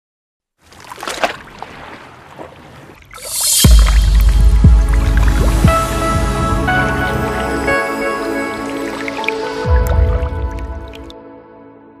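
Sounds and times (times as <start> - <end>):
liquid dripping and splashing: 0.6 - 6.3, 8.5 - 11.2
sustained music: 3.5 - 12.0.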